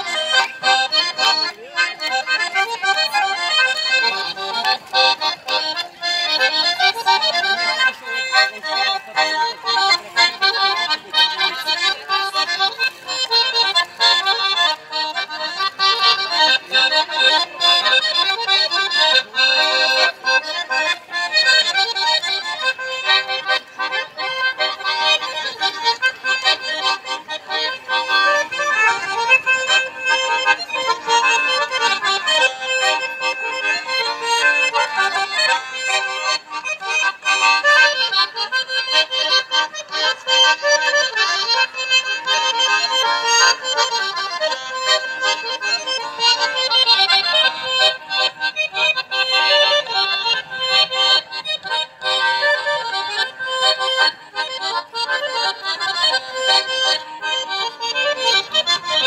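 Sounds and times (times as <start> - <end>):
accordions playing dance tune: 0.0 - 59.0.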